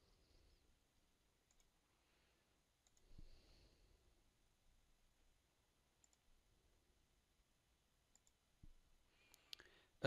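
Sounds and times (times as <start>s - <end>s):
faint computer mouse clicks: 1.5s - 1.7s, 2.8s - 3.2s, 6.0s - 6.2s, 8.1s - 8.4s.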